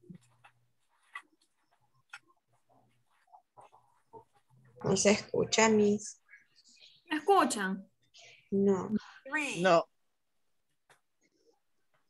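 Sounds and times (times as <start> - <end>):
faint blips and clicks: 0.0 - 5.2.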